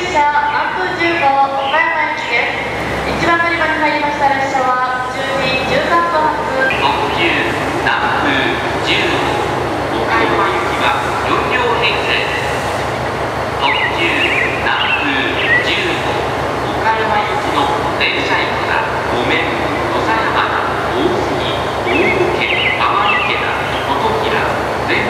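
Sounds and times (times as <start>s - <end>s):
people talking: 0.0s - 12.5s, 13.6s - 25.0s
diesel engines idling: 0.0s - 25.0s.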